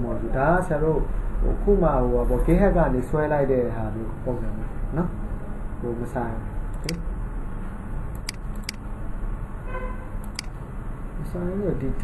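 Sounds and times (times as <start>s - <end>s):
low background noise: 0.0s - 12.0s
mouse clicks: 6.8s - 7.0s, 8.2s - 8.8s, 10.2s - 10.5s.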